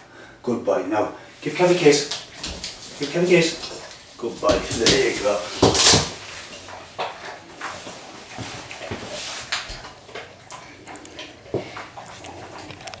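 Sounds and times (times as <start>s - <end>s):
dog chewing food: 2.2s - 13.0s.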